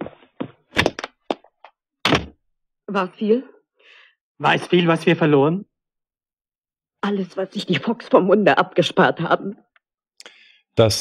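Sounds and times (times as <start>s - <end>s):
sharp thuds: 2.0s - 2.4s.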